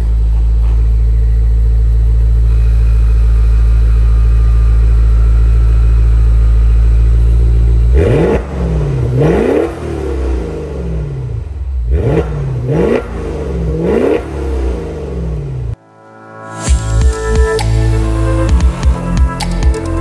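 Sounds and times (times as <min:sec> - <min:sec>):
car engine idling: 0:00.0 - 0:15.8
engine revving sharply: 0:07.8 - 0:15.8.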